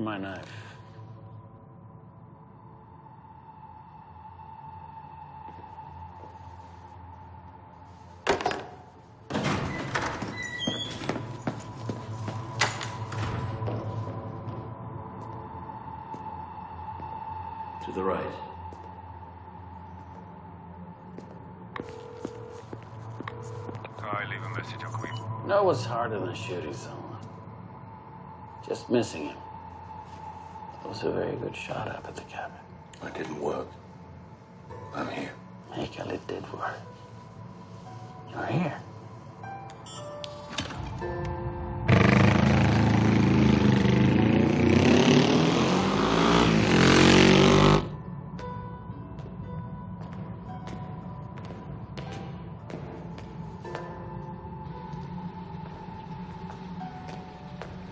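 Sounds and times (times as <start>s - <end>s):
motorcycle engine accelerating: 41.8s - 47.9s.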